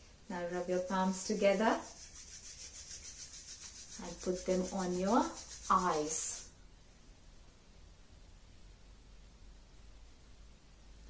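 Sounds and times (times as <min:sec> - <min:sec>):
hands rubbing together: 0:01.1 - 0:06.5.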